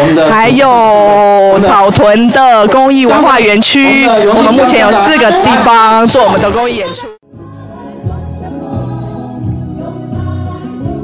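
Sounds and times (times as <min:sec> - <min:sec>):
choir singing in harmony: 0:07.3 - 0:11.0.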